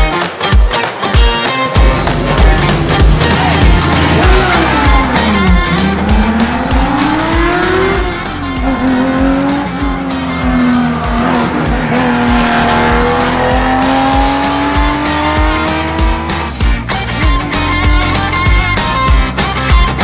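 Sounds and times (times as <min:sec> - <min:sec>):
rock music with drum beat: 0:00.0 - 0:20.0
car engine accelerating: 0:01.8 - 0:19.2.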